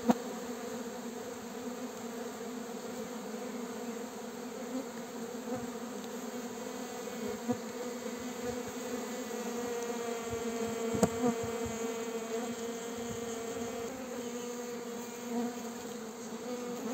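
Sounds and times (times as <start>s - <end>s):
bees buzzing: 0.0s - 16.9s.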